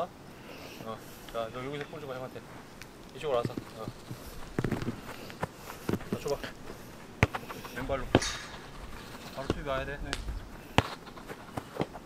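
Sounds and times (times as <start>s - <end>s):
football kicks on turf: 9.4s - 11.2s.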